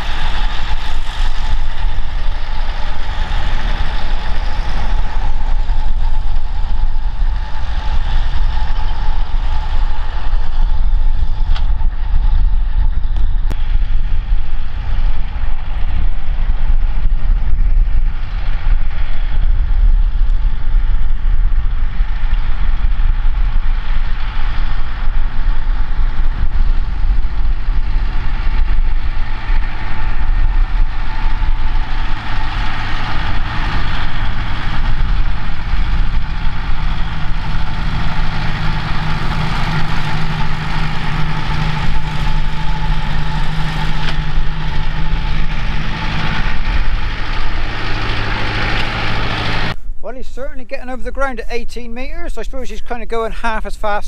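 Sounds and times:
tractor engine rumbling: 0.0 - 54.0.

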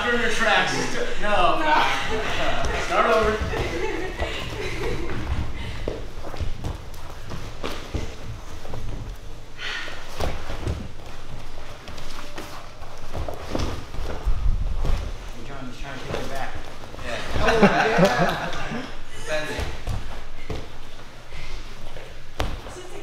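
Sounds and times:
bodies thudding on foam mats: 2.6 - 9.3, 10.0 - 15.4, 19.5 - 21.1, 22.2 - 22.8.

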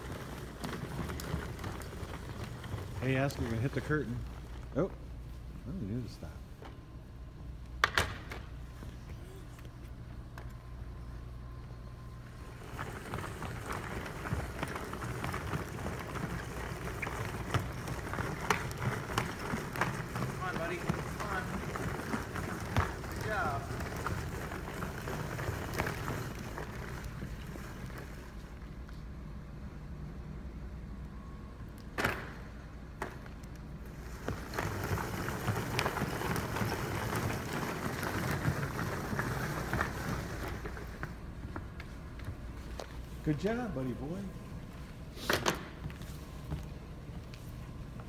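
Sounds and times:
toy wheels rolling on wooden floor: 0.0 - 4.8, 12.2 - 29.0, 33.0 - 44.2.

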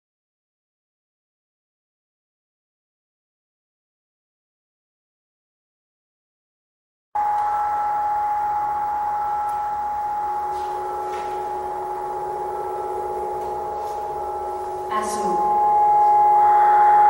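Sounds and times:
held ringing tones drone: 7.2 - 17.0.

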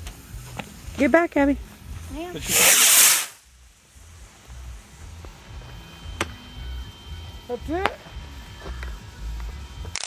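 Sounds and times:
firework hissing: 0.0 - 6.9.

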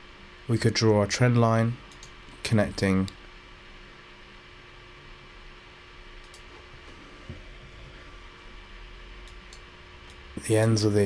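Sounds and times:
faint constant hum: 0.0 - 11.0
microphone hiss: 0.0 - 11.0.

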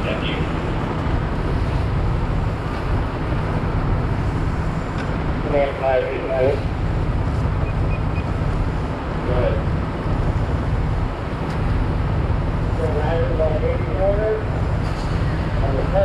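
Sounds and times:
fire engine rumbling: 0.0 - 16.0.

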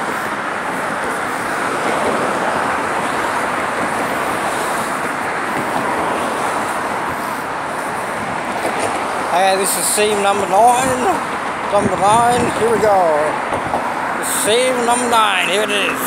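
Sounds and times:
road traffic tyre hiss: 0.0 - 16.0.

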